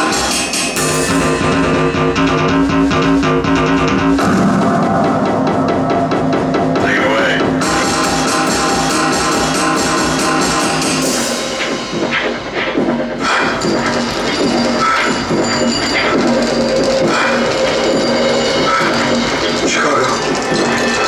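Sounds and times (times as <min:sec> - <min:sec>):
drum kit played with mallets: 0:00.0 - 0:21.0
synthesizer drone: 0:00.0 - 0:21.0.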